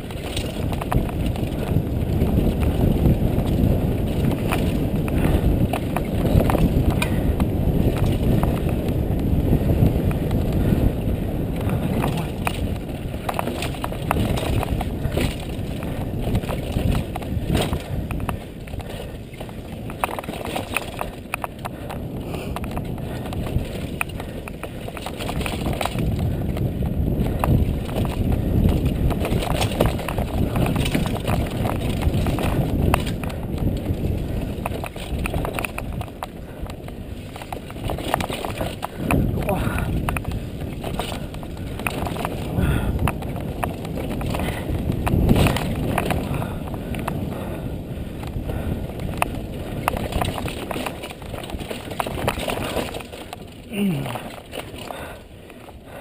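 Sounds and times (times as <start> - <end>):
bike rattling and knocking: 0.0 - 56.0
bike tyres rumbling over dirt: 0.0 - 56.0
wind rush on microphone: 0.0 - 56.0.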